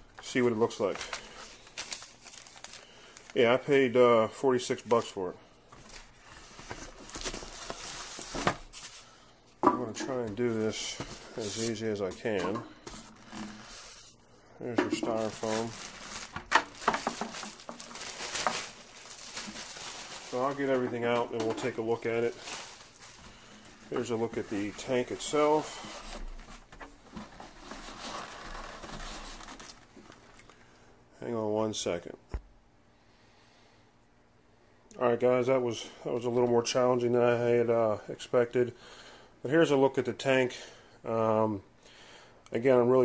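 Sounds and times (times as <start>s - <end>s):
packing material rustling and scraping: 0.2s - 3.6s, 5.8s - 9.2s, 10.0s - 30.6s.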